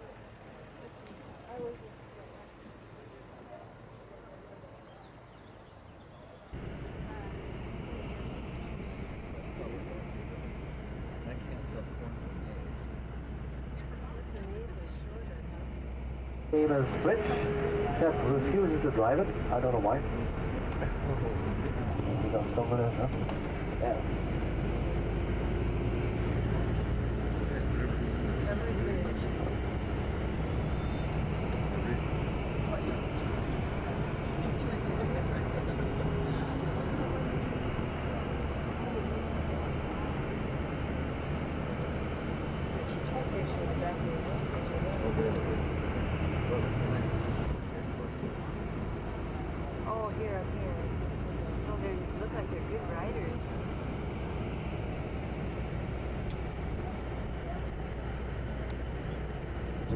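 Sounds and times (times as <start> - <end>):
coach engine and road rumble: 0.0 - 59.9
passengers murmuring: 0.0 - 59.9.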